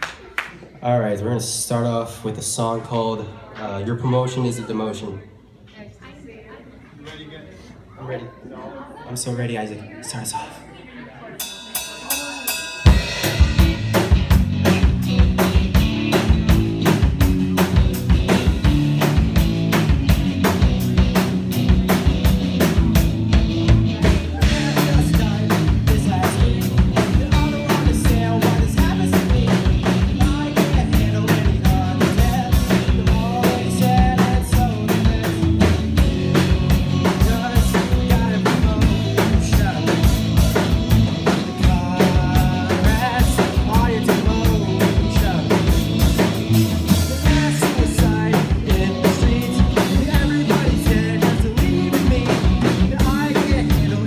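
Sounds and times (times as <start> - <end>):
rock band playing: 11.4 - 54.0.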